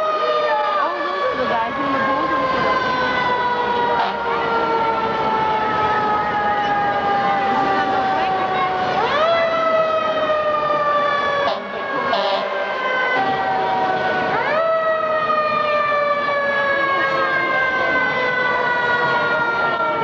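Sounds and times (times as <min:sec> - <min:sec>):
emergency vehicle siren wailing: 0:00.0 - 0:20.0.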